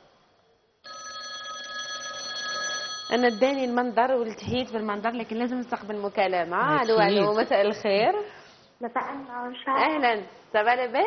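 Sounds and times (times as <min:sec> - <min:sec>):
electronic telephone ring: 0:00.8 - 0:03.8.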